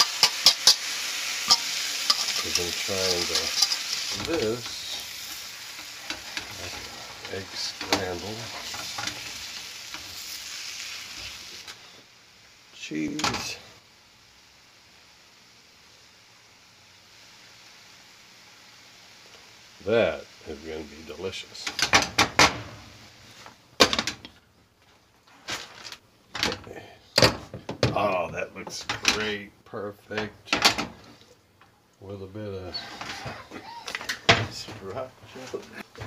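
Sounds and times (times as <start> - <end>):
spatula stirring: 0.0 - 10.4
eggs sizzling in a frying pan: 0.0 - 36.0.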